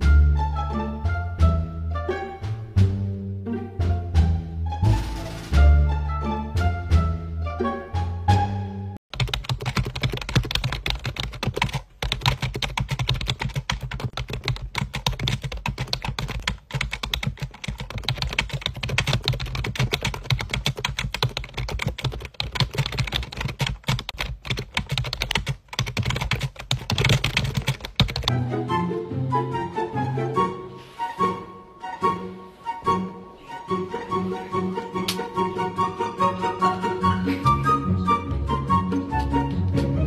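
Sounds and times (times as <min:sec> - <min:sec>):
rapid irregular clicking: 0:09.1 - 0:28.3.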